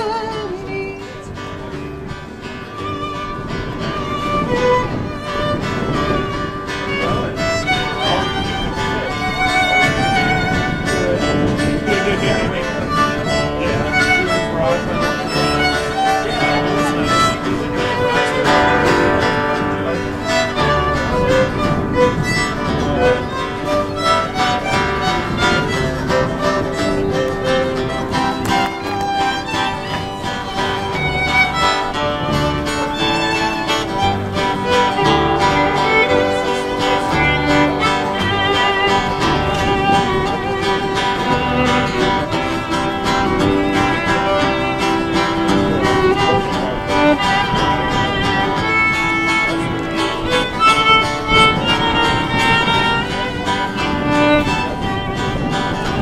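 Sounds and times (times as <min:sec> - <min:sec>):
fiddle playing melody: 0:00.0 - 0:56.0
strummed acoustic guitar: 0:00.0 - 0:56.0
upright bass walking notes: 0:01.6 - 0:56.0.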